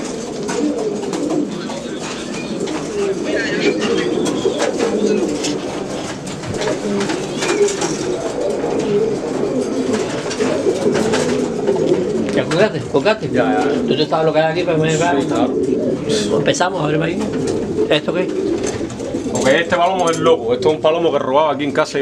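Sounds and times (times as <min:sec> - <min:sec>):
pigeons cooing: 0:00.0 - 0:21.8.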